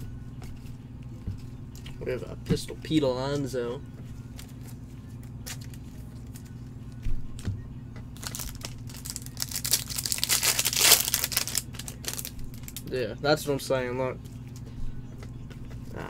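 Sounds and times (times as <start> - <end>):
foil wrapper tearing and crinkling: 8.2 - 12.9.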